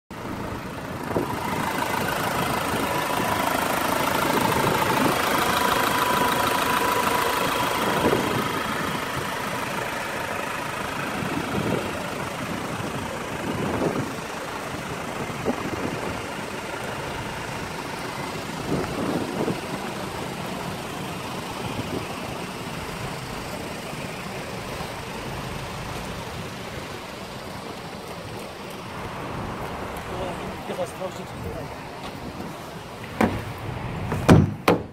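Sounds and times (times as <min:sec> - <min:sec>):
diesel engine idling: 0:00.1 - 0:34.9
short engine knocks: 0:33.1 - 0:34.9.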